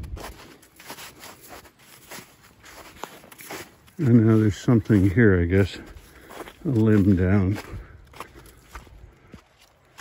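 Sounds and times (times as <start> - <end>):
footsteps on wet snow: 0.0 - 10.0.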